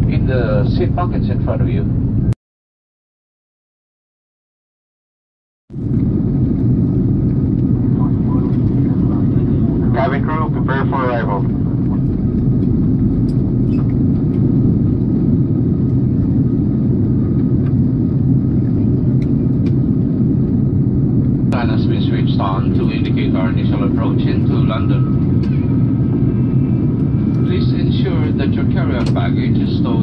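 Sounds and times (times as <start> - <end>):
jet airliner cabin rumble: 0.0 - 2.4, 5.7 - 30.0.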